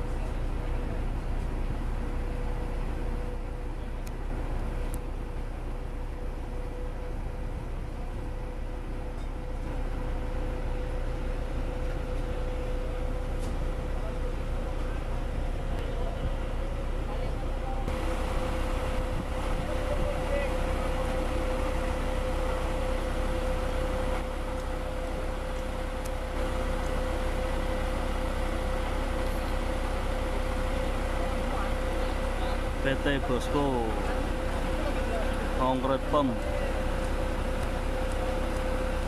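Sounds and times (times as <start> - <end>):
constant high hum: 0.0 - 39.0
diesel engine drone: 0.0 - 39.0.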